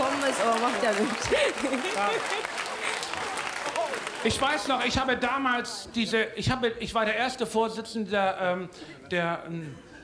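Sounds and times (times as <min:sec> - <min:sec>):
audience applauding: 0:00.0 - 0:05.2.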